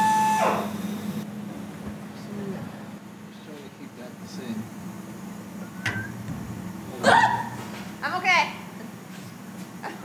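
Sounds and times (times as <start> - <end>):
steady low hum: 0.6 - 10.0.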